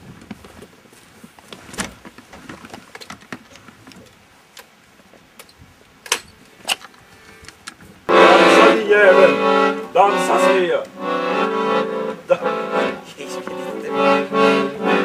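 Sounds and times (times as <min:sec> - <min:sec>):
handling clicks and knocks: 0:01.4 - 0:04.7.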